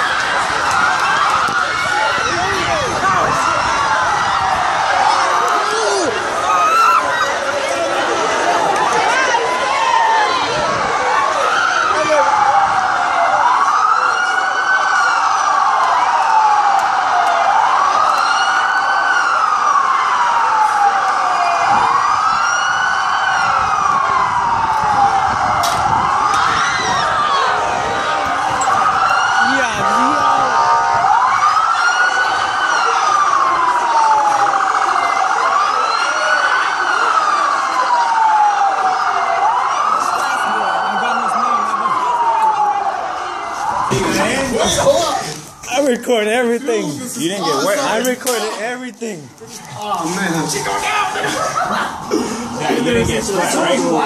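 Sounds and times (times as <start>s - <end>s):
police siren wailing: 0.0s - 48.6s, 49.3s - 54.0s.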